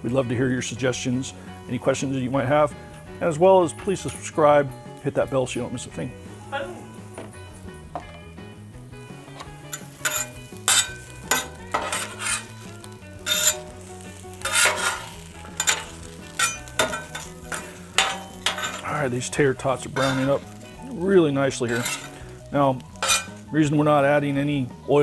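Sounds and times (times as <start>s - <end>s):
light sizzle: 6.2s - 25.0s
metal spatula scraping griddle: 9.2s - 24.0s.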